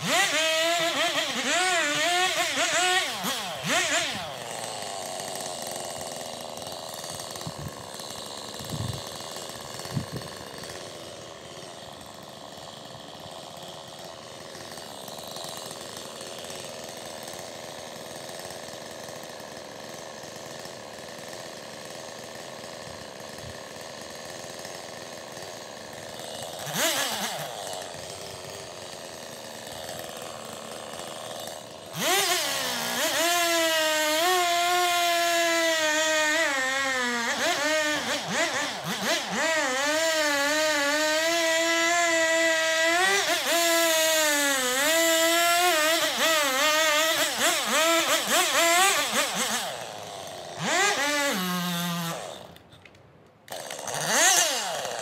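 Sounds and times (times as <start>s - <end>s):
chainsaw revving and cutting log: 0.0s - 55.0s.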